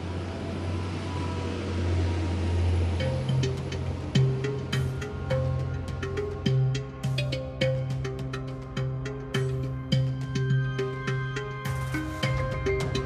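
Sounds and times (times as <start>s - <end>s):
diesel train engine rumble: 0.0s - 13.0s
music: 2.3s - 13.0s.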